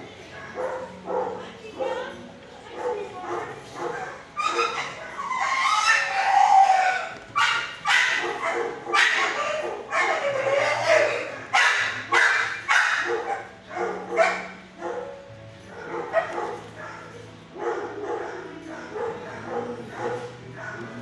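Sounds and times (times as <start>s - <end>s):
dogs barking in echoing kennel: 0.0s - 21.0s.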